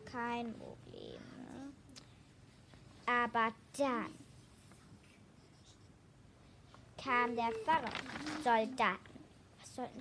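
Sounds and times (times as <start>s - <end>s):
paper rustling: 7.0s - 9.1s.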